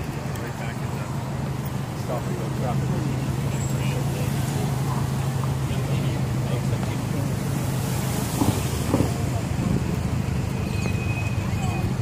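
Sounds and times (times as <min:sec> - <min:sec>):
faint people talking: 0:00.0 - 0:12.0
vehicle engine humming: 0:00.0 - 0:12.0.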